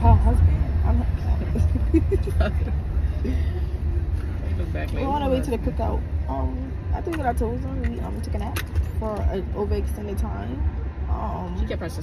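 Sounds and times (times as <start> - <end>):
car engine and road noise: 0.0 - 12.0.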